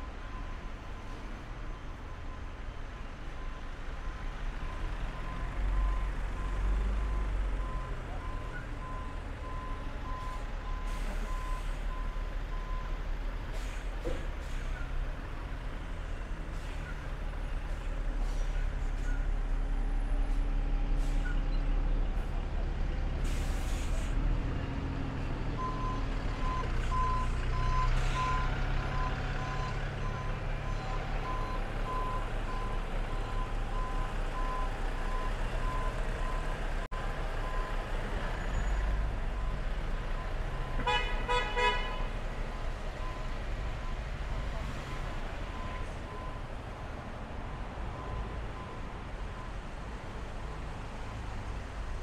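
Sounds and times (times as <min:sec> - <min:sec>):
bus and lorry engines rumbling: 0:00.0 - 0:52.0.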